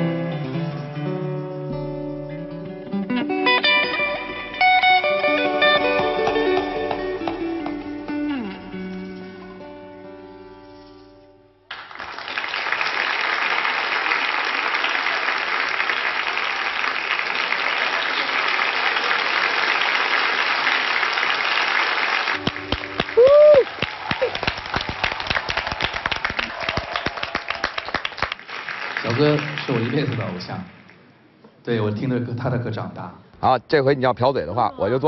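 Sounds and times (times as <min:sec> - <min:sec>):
audience applauding: 0:05.6 - 0:08.0, 0:11.7 - 0:31.1.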